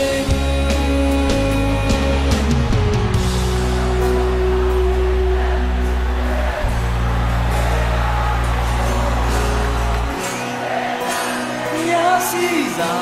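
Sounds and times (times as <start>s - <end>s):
electric guitar: 0.0s - 13.0s
rock band playing: 0.0s - 13.0s.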